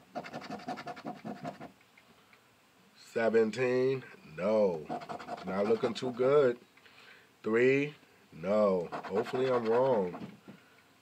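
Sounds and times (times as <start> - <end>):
lottery ticket being scratched: 0.1 - 1.7, 4.8 - 6.2, 8.6 - 10.3.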